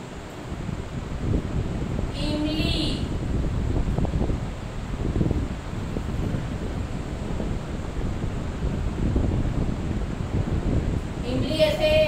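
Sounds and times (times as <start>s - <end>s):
low rumbling on microphone: 0.0s - 12.0s.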